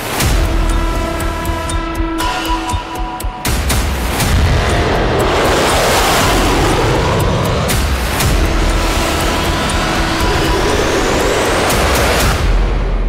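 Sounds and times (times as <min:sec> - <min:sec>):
dramatic music: 0:00.0 - 0:13.0
fighter jet engine noise: 0:00.0 - 0:13.0
sharp hits: 0:00.0 - 0:13.0
rising riser sweep: 0:01.0 - 0:13.0.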